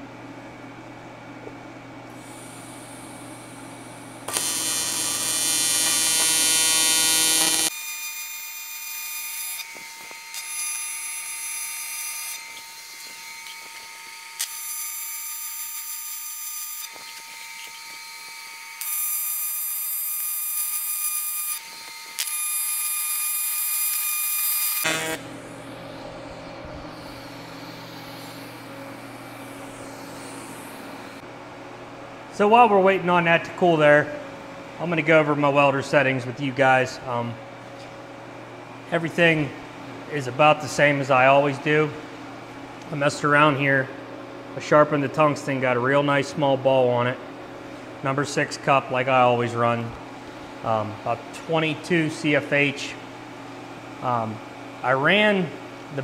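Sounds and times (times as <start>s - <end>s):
steady background hum: 0.0s - 18.9s, 24.8s - 56.0s
welding arc buzzing: 2.1s - 31.3s.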